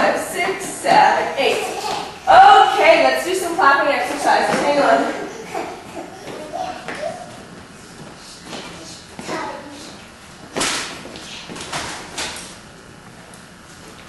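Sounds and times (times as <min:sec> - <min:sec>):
small children's voices: 0:05.1 - 0:07.5, 0:08.7 - 0:10.0.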